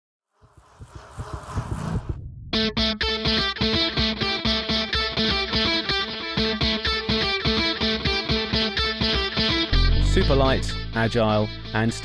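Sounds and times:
rising whoosh: 0:00.4 - 0:03.0.

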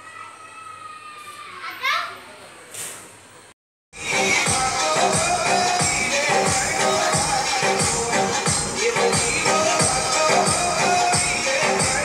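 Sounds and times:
young child crying: 0:00.0 - 0:02.2.

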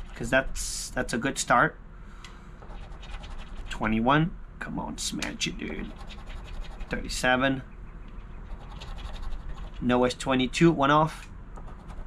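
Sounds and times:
coin scraping scratch card: 0:02.6 - 0:03.8, 0:05.7 - 0:07.2, 0:08.5 - 0:09.8.

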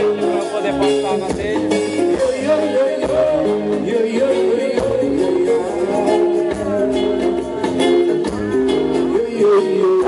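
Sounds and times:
acoustic guitar: 0:00.0 - 0:10.0
drum kit: 0:00.0 - 0:10.0
electric guitar: 0:00.0 - 0:10.0
hand percussion: 0:00.0 - 0:10.0.

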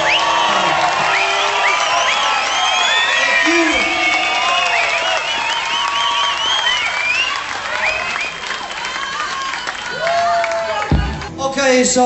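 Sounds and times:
audience applauding: 0:00.0 - 0:11.7
high whistles: 0:01.1 - 0:08.4
people shouting: 0:03.3 - 0:05.7.

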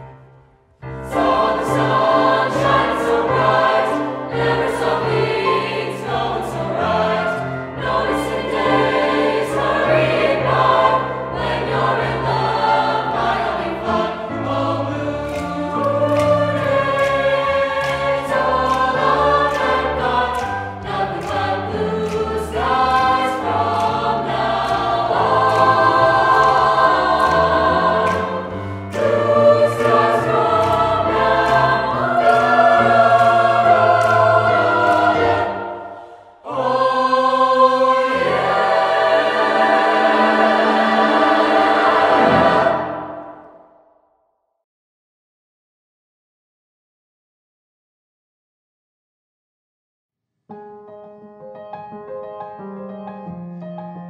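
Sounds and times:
choir singing in harmony: 0:00.0 - 0:43.9.

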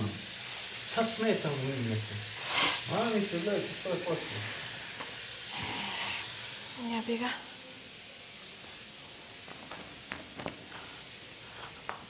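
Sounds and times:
water running into sink: 0:00.0 - 0:07.2.

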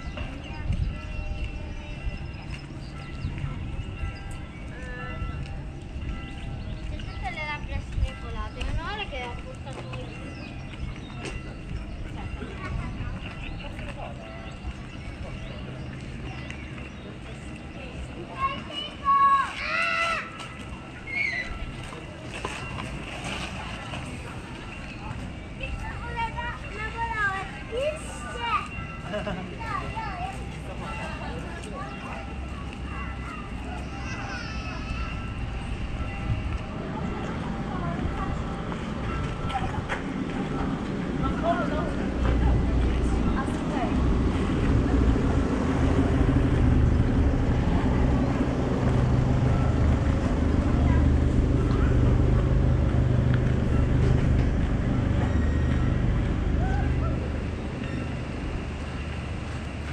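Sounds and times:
children calling and chattering: 0:00.0 - 0:59.9
low background rumble: 0:42.0 - 0:59.9.

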